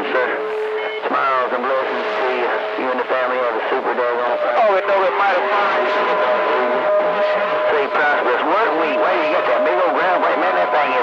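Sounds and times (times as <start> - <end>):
radio static hiss: 0.0 - 11.0.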